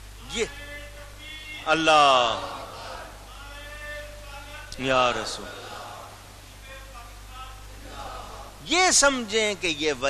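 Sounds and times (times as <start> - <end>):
steady low hum: 0.0 - 10.0
man lecturing through microphone: 0.2 - 5.6, 6.5 - 7.8, 8.6 - 10.0.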